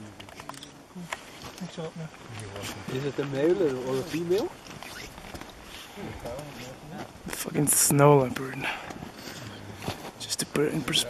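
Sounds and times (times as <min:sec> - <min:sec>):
people talking quietly: 0:00.0 - 0:11.0.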